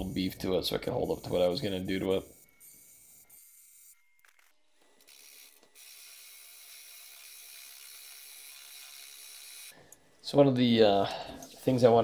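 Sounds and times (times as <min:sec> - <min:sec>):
wood lathe whirring: 0:00.8 - 0:09.8.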